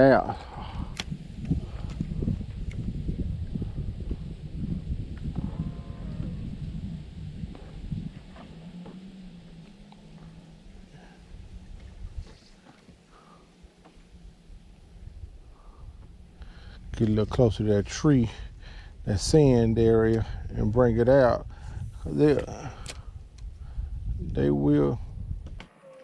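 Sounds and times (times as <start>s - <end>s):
wind buffeting microphone: 0.0s - 12.6s, 14.0s - 25.6s
steady low hum: 0.0s - 25.6s.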